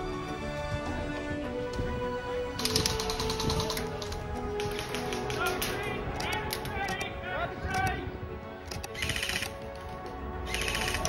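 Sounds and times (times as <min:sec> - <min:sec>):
background music with held notes: 0:00.0 - 0:11.0
sharp mechanical clicks: 0:02.6 - 0:07.1, 0:08.6 - 0:09.9, 0:10.5 - 0:11.0.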